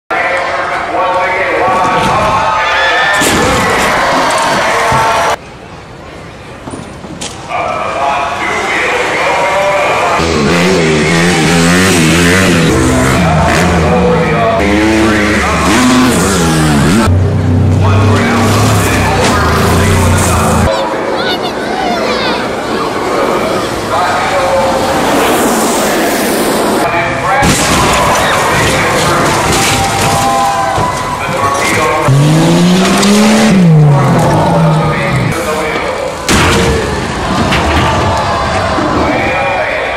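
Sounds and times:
amplified voice over public address: 0.1 - 5.4, 7.5 - 17.0, 17.8 - 22.3, 23.2 - 36.2, 39.0 - 39.9
car crashing onto car: 27.4 - 32.0.

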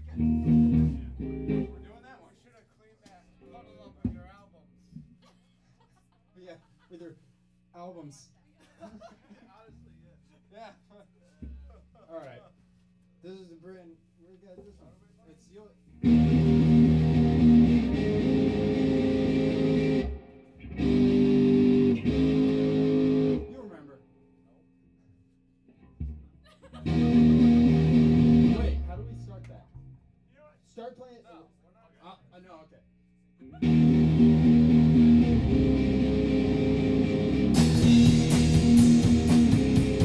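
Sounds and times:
electric bass low note: 0.0 - 1.9, 16.0 - 23.5, 26.9 - 30.0, 33.6 - 40.0
electric guitar chords: 0.0 - 1.9, 16.0 - 23.6, 26.8 - 30.0, 33.5 - 40.0.

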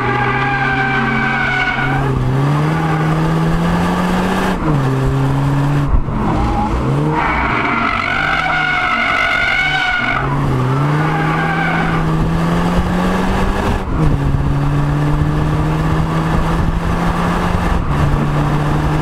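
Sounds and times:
car engine revving: 0.0 - 19.0
tyres squealing: 6.3 - 12.0.

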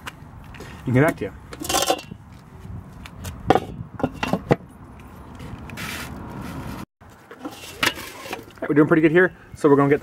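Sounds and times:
metal grill lid clinking: 1.6 - 2.1.

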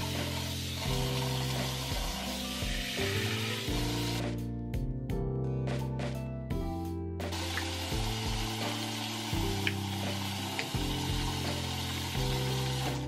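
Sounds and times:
faucet running into sink: 0.0 - 4.2, 7.3 - 13.0
background music with low notes: 0.0 - 13.0.

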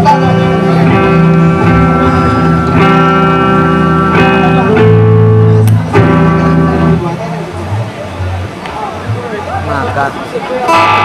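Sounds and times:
guitars strumming chords: 0.0 - 9.2, 10.6 - 11.0.

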